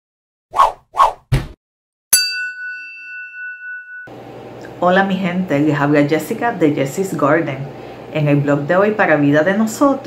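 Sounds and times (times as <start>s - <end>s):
bell-like ding: 2.1s - 4.2s.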